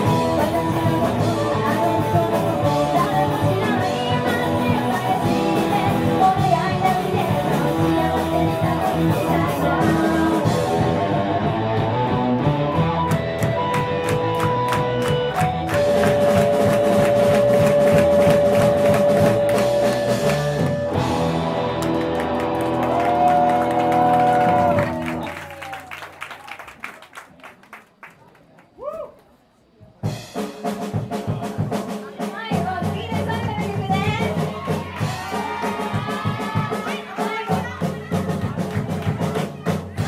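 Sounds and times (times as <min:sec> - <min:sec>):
live rock band playing loudly: 0:00.0 - 0:25.2.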